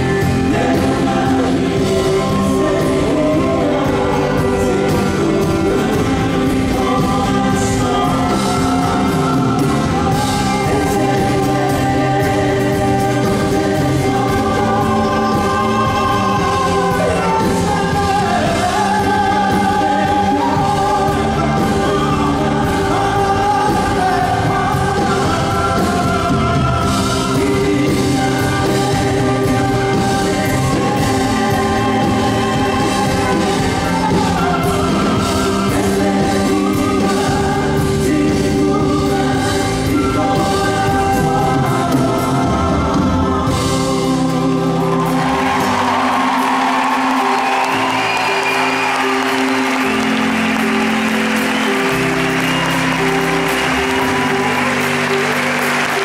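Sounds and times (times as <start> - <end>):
folk band playing with singing: 0.0 - 56.0.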